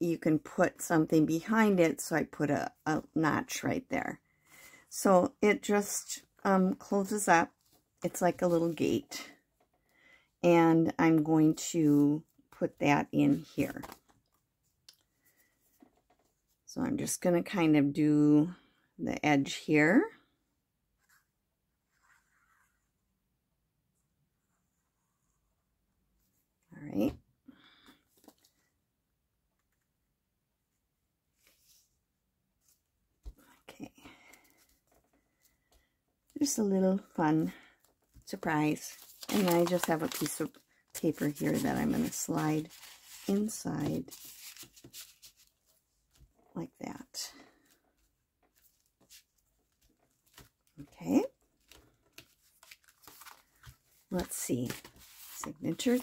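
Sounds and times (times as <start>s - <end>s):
soft paper rustle: 37.6s - 46.4s, 47.3s - 56.0s.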